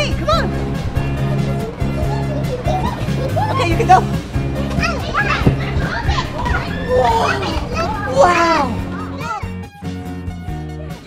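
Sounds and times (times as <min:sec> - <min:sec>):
children's excited voices: 0:00.0 - 0:09.7
background music: 0:00.0 - 0:11.0.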